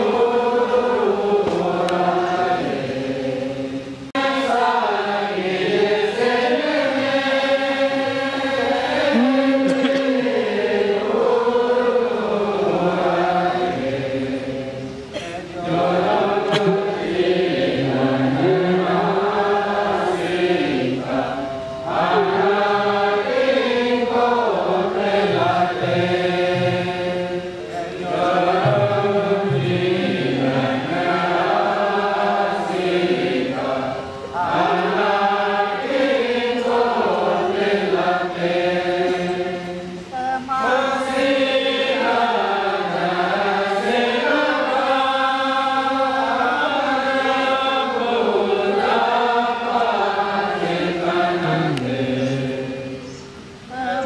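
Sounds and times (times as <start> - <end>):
voices singing a chanted hymn: 0.0 - 54.0.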